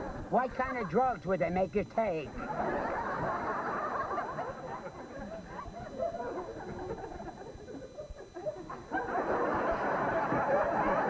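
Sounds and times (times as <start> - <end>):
stifled laughter: 2.3 - 11.0.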